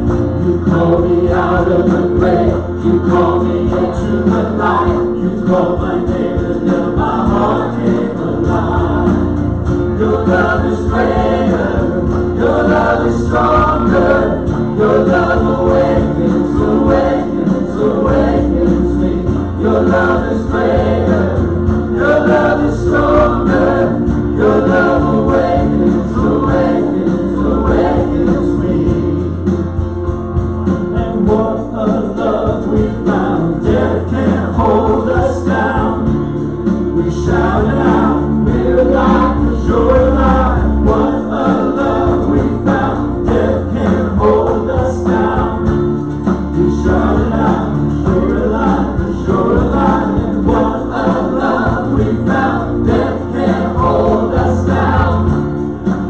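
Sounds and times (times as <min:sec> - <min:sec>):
acoustic guitar: 0:00.0 - 0:56.0
group singing gospel song: 0:00.0 - 0:56.0.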